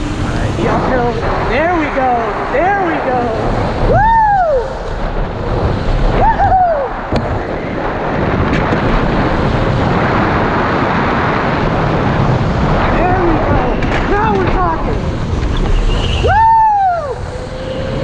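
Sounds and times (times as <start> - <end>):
wind rushing: 0.0 - 18.0
tyre noise: 12.8 - 18.0.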